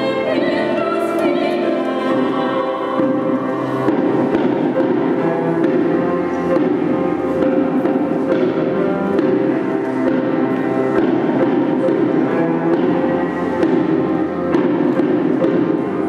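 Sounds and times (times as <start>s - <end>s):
cello: 0.0s - 16.0s
grand piano chords: 0.0s - 16.0s.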